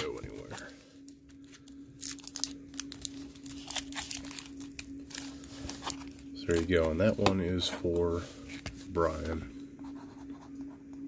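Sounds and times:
plastic tape crinkling: 0.0 - 9.4
steady low hum: 0.0 - 11.0.

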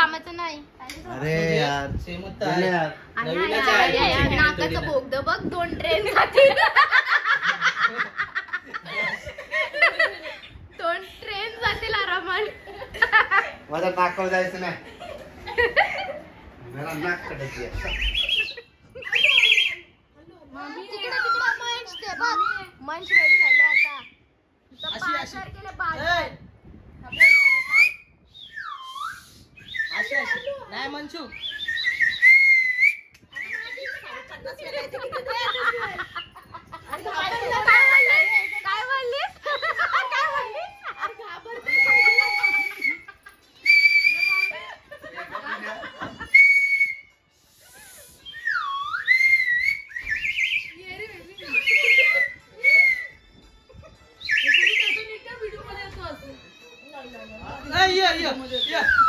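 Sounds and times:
toy whistle warbling trill: 54.2 - 55.1.

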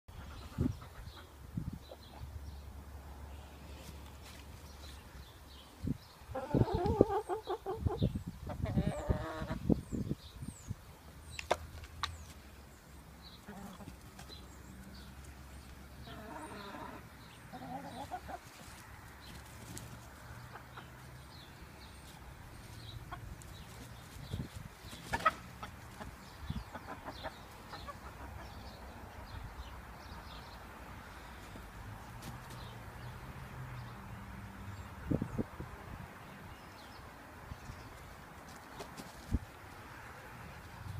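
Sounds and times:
chickens clucking: 0.1 - 2.4, 6.3 - 9.8, 13.4 - 15.1, 15.7 - 29.4.

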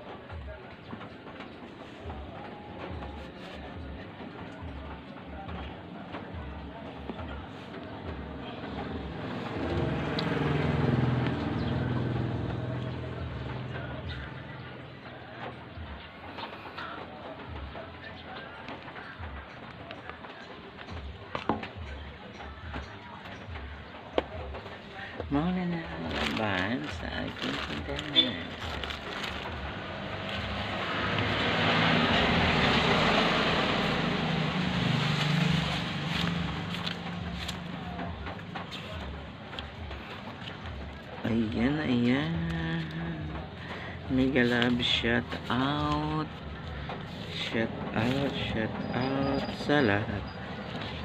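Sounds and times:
vehicle engine passing: 5.4 - 15.5, 24.8 - 51.0.

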